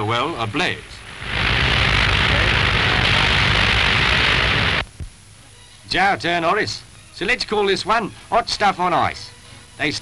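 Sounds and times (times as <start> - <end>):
fire roaring: 0.5 - 4.9
low rumble: 1.0 - 4.9.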